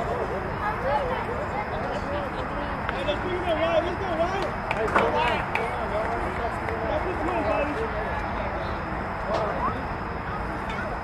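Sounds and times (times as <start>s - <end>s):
people chattering and calling out: 0.0s - 11.0s
steady background noise: 0.0s - 11.0s.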